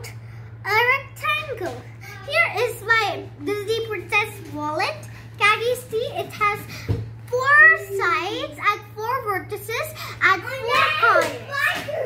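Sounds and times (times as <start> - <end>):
girl speaking: 0.0 - 12.0.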